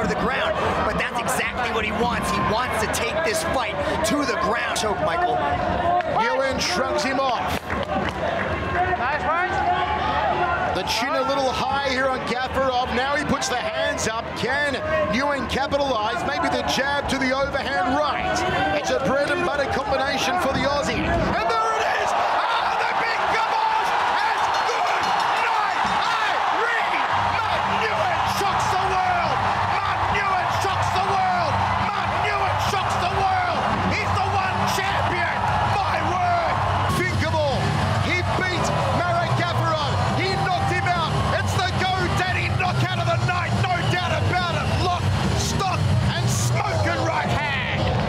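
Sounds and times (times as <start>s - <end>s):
crowd cheering and shouting: 0.0s - 48.0s.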